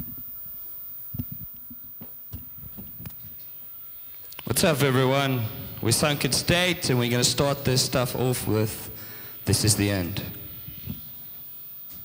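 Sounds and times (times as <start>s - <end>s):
amplifier hum: 0.0s - 12.0s.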